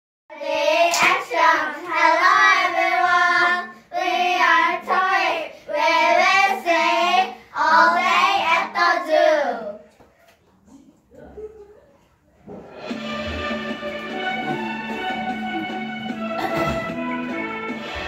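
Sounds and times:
children singing: 0.3 - 9.8.

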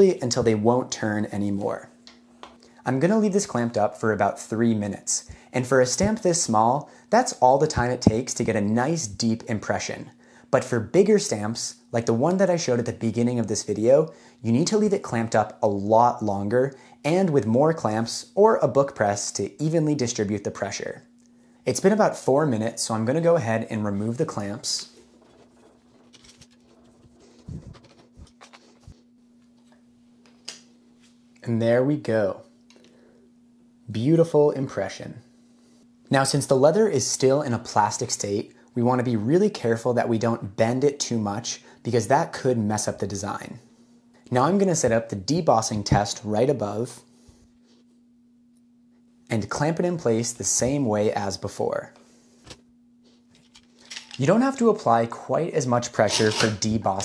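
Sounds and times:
faint steady hum: 0.0 - 57.0
clamp screw clicks and scrapes: 56.1 - 56.6.

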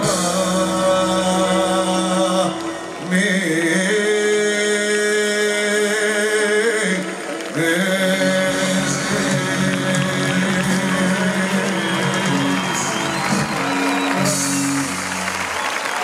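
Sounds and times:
live band playing: 0.0 - 5.5, 7.1 - 16.0
crowd applauding and cheering: 0.0 - 16.0.

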